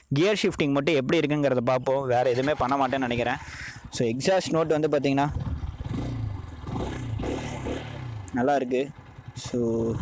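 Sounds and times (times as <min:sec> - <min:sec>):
motorcycle engine running at low revs: 0:02.9 - 0:10.0.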